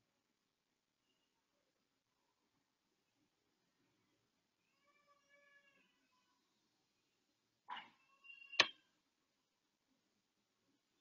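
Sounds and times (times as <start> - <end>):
faint drawn-out pitched call: 7.7 - 8.9.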